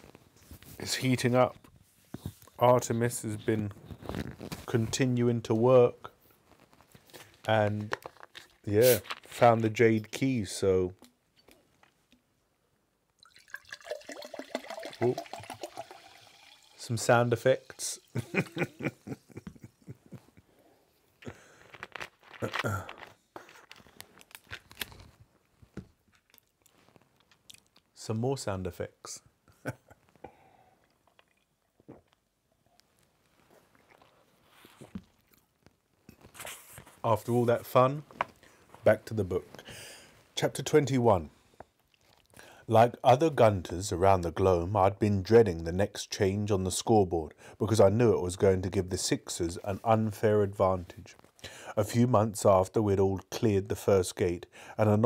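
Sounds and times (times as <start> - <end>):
water gurgling in plastic bottle: 13.2 - 18.4.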